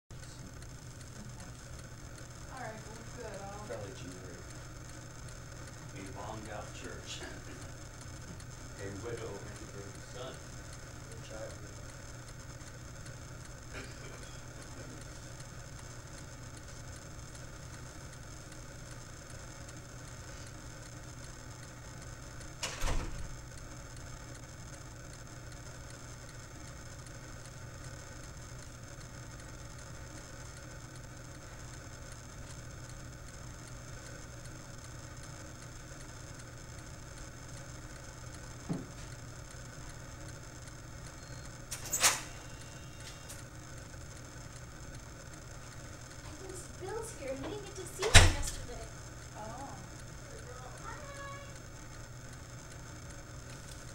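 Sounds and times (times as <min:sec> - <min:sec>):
steady low hum: 0:00.1 - 0:53.9.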